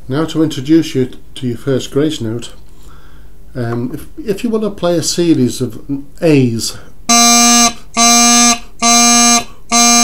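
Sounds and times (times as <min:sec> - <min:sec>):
bagpipe practice chanter notes: 0:07.1 - 0:10.0.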